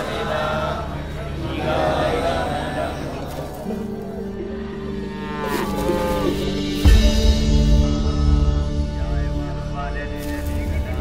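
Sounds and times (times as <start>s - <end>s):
soundtrack music with held low notes: 0.0s - 11.0s.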